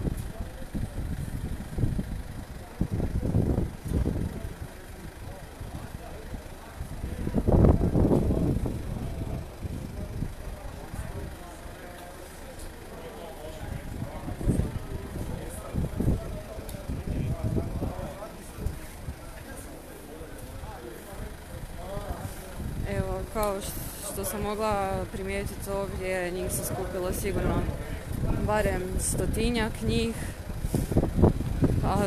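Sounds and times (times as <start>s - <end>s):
indistinct voices talking: 0.0s - 32.0s.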